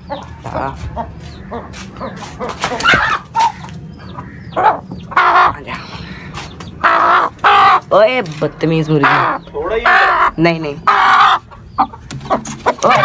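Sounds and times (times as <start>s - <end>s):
scuffling noises: 0.2s - 3.9s
hen squawking: 1.0s - 13.0s.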